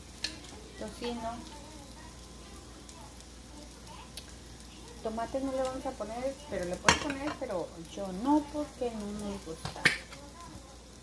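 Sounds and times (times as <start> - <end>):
food sizzling on griddle: 0.0 - 11.0.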